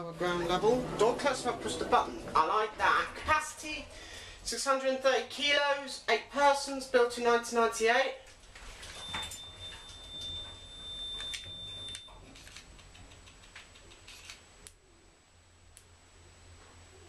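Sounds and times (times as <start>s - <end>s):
lift low hum: 0.0s - 4.8s.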